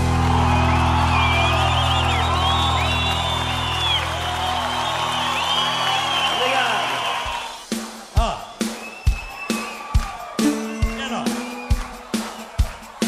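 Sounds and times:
audience cheering and whistling: 0:00.0 - 0:13.0.

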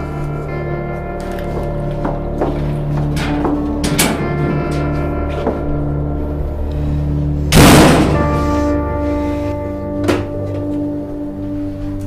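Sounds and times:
sustained music chords: 0:00.0 - 0:12.0.

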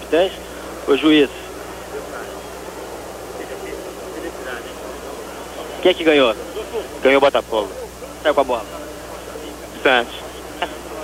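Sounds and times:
broadcast hiss and hum: 0:00.0 - 0:11.0
distant voices: 0:00.0 - 0:11.0
faint stadium crowd murmur: 0:00.0 - 0:11.0.

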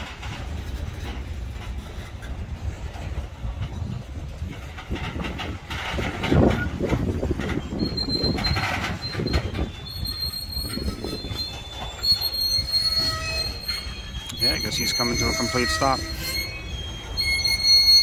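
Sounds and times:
freight train rolling rumble: 0:00.0 - 0:18.0
train car clunks: 0:00.0 - 0:18.0
wheel and brake squeal: 0:00.0 - 0:18.0.

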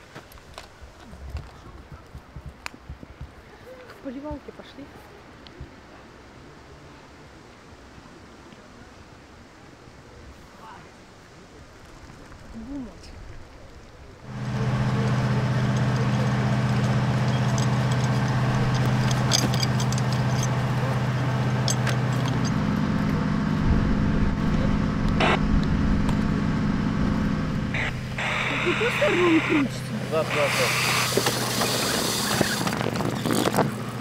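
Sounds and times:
engine running: 0:14.2 - 0:34.0
sharp clicks and knocks: 0:14.3 - 0:23.2.

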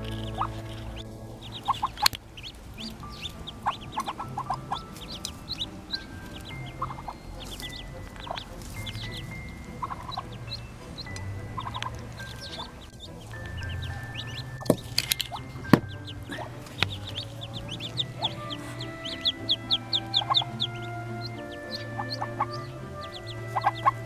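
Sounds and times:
background music: 0:00.0 - 0:24.0
ducklings peeping: 0:00.0 - 0:24.0.

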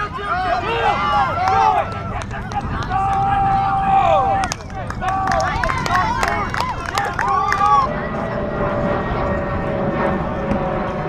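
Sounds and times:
players shouting: 0:00.0 - 0:08.4
drone with falling pitch: 0:00.6 - 0:11.0.

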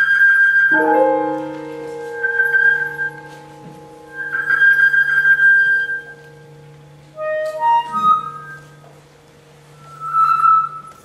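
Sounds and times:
flute high held note: 0:00.0 - 0:09.0, 0:09.7 - 0:11.0
low held notes: 0:00.0 - 0:11.0.

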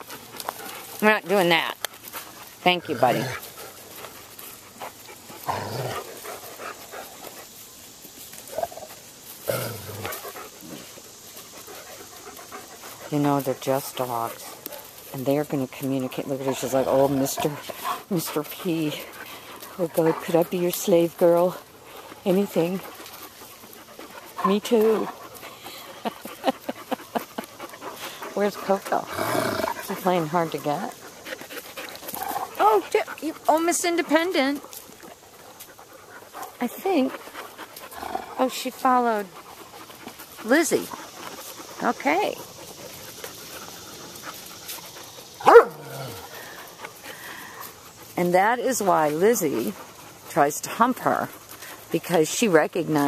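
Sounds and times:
dog panting: 0:00.0 - 0:53.0.

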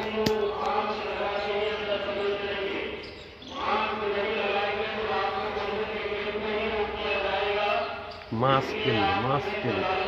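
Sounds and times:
voices chanting long notes: 0:00.0 - 0:10.0.

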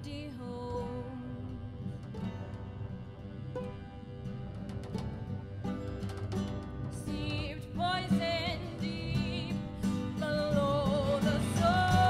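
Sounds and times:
acoustic guitar: 0:00.0 - 0:12.0
bass: 0:00.0 - 0:12.0
person singing: 0:07.0 - 0:12.0.

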